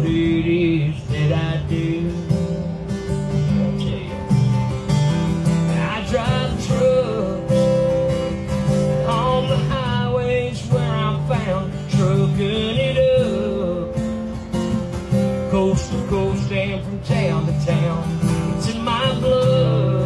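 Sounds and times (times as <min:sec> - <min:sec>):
acoustic guitars playing country: 0:00.0 - 0:20.0.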